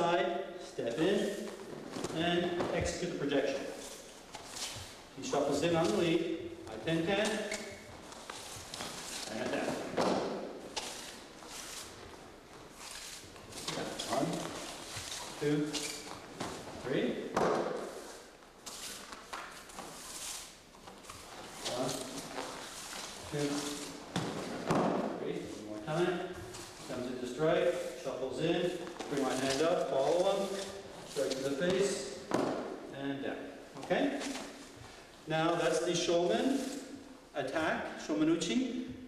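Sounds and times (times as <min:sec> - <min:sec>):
person speaking: 0:00.0 - 0:04.0, 0:05.2 - 0:07.9, 0:09.1 - 0:10.4, 0:13.5 - 0:16.1, 0:21.6 - 0:22.5, 0:23.2 - 0:34.6.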